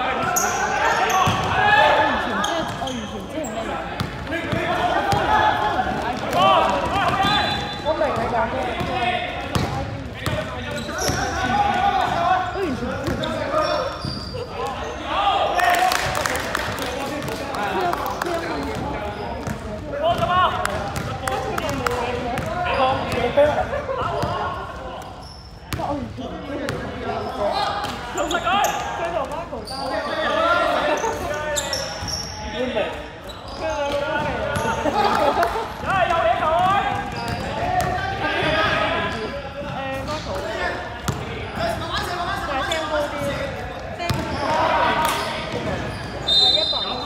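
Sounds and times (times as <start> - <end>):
indistinct shouts and talk: 0.0 - 47.0
basketball bouncing on floor: 44.1 - 44.3.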